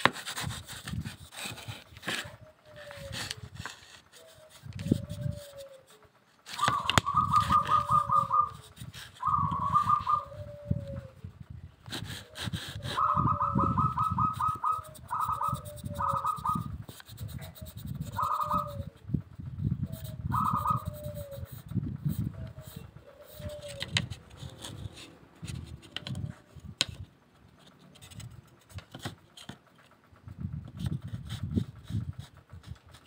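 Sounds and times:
coo-like bird notes: 2.2s - 26.7s
bird trills: 4.2s - 11.2s, 12.9s - 16.7s, 17.4s - 19.0s, 19.8s - 21.5s, 22.2s - 23.8s.

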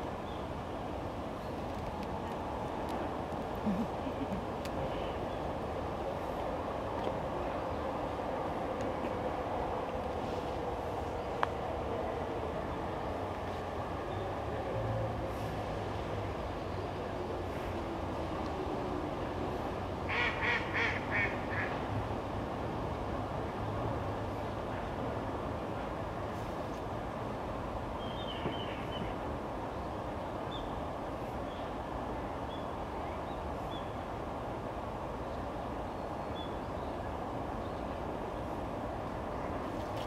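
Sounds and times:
low rumbling outdoor noise: 0.0s - 40.0s.

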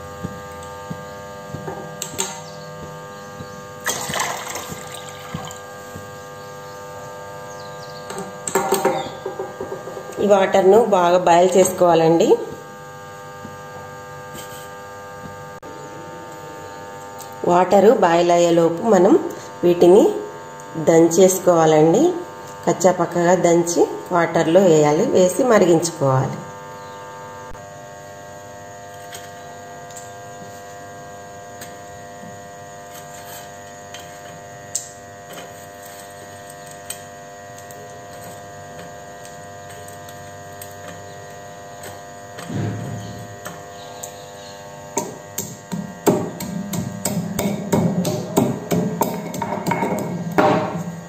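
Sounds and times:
electrical hum: 0.0s - 51.0s.

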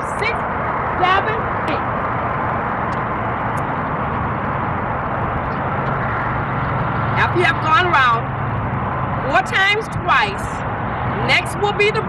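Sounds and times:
road traffic roar: 0.0s - 12.0s.

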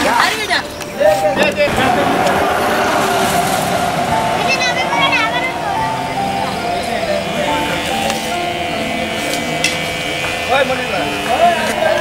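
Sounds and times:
people's voices: 0.0s - 12.0s
vehicles passing: 0.0s - 12.0s.

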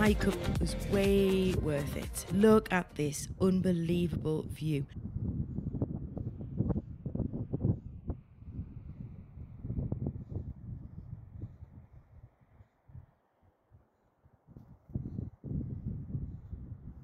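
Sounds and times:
wind buffeting microphone: 0.9s - 17.0s.

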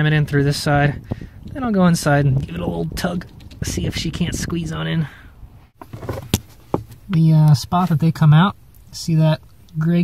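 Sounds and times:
light handling noise: 5.8s - 8.1s.

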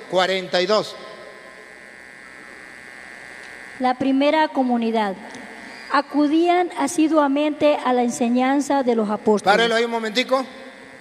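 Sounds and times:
electrical hum and buzz: 0.0s - 11.0s.

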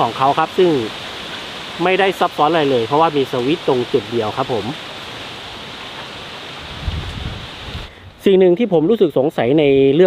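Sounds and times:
wind rushing through leaves: 0.0s - 8.6s
wind rumble on microphone: 6.5s - 8.2s.

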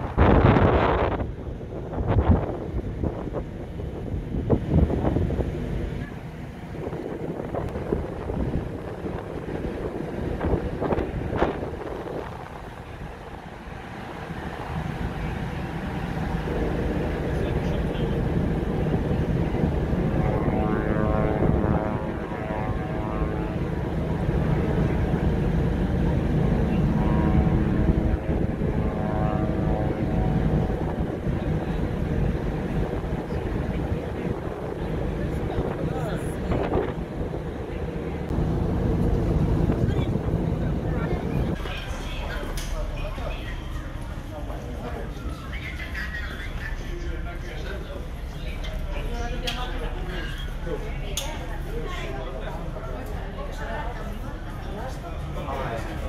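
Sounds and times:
wind gusting on microphone: 0.0s - 50.8s
ship engines droning: 0.0s - 56.0s.

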